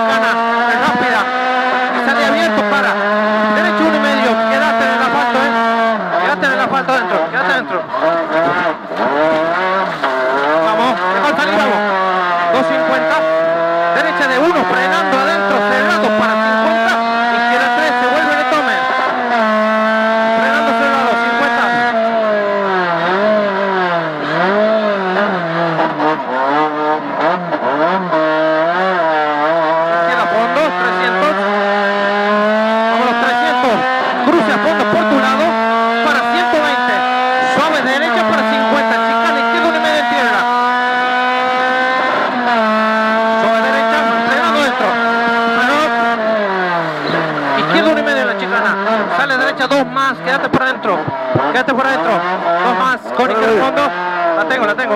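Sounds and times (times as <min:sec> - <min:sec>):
rally car engine revving: 0:00.0 - 0:54.9.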